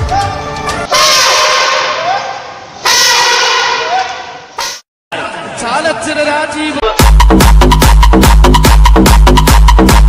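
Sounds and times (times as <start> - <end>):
elephant trumpeting: 0.9 - 4.5.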